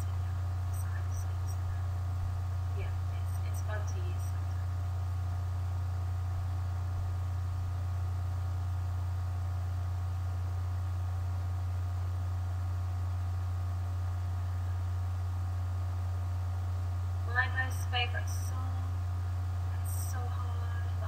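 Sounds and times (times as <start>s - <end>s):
low electrical hum: 0.0s - 21.0s.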